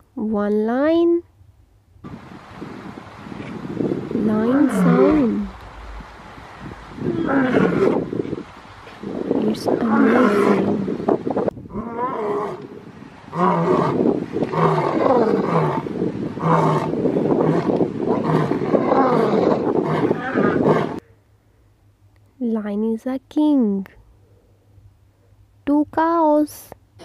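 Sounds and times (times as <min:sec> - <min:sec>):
lion roaring and grunting: 0:04.4 - 0:05.5, 0:07.0 - 0:08.1, 0:09.7 - 0:10.9, 0:11.7 - 0:12.7, 0:13.3 - 0:21.0.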